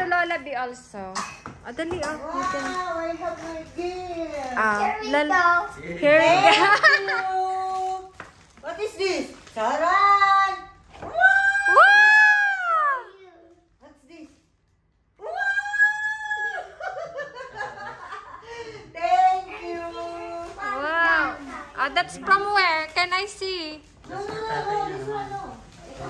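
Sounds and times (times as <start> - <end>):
girl squealing with delight: 11.0 - 13.1.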